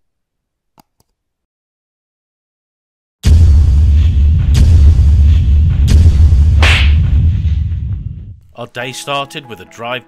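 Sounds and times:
deep boom: 3.2s - 8.4s
sharp impact hits: 3.2s - 8.4s
whoosh: 3.2s - 8.4s.

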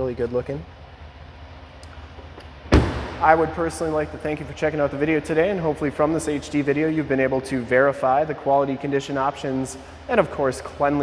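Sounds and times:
steady low hum: 0.0s - 11.0s
car door slamming shut: 2.7s - 3.3s.

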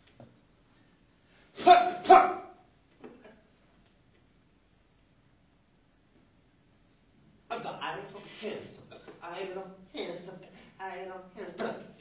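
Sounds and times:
barked vocal shouts: 1.6s - 2.6s.

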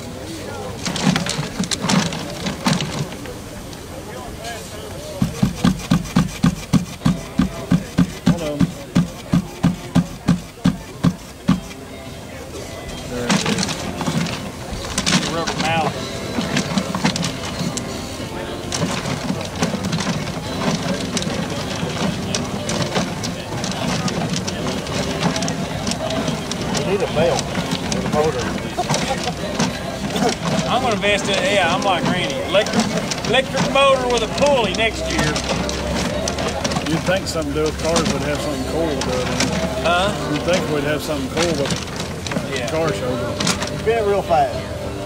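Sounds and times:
paper tickets tumbling in raffle drum: 0.0s - 45.0s
rhythmic knocking of spinning drum: 0.0s - 45.0s.

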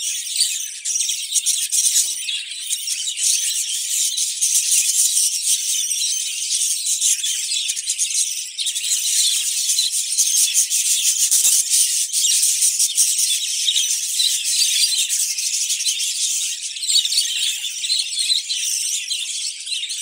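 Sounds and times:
budgerigars chirping and warbling: 0.0s - 20.0s.

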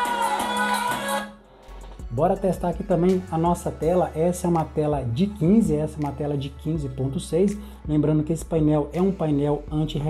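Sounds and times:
latin music from laptop speakers: 0.0s - 10.0s.

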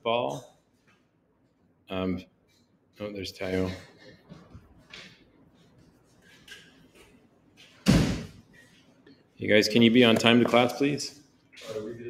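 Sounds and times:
door slamming shut: 7.8s - 8.4s.

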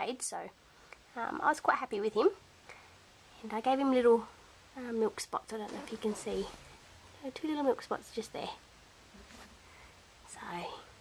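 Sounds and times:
woman softly speaking: 10.3s - 10.9s.

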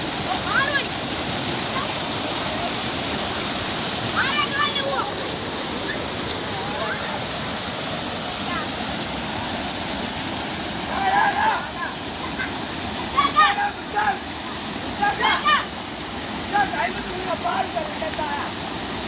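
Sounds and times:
water rushing over rocks: 0.0s - 19.0s.

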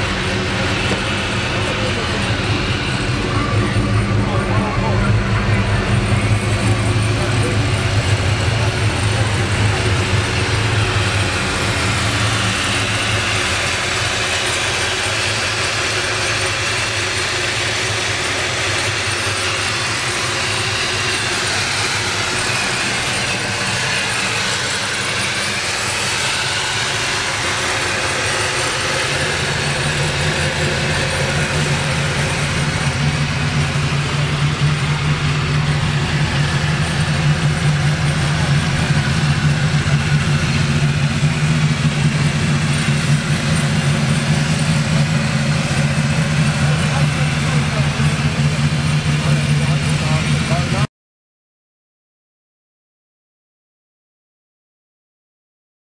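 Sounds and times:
engine idling: 0.0s - 50.9s.

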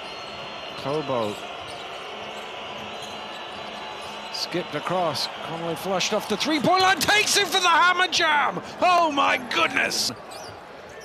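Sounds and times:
crowd din: 5.3s - 10.3s.

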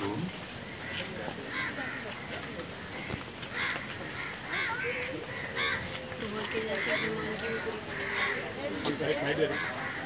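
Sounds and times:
crows cawing: 0.6s - 10.0s
people talking: 4.4s - 10.0s.

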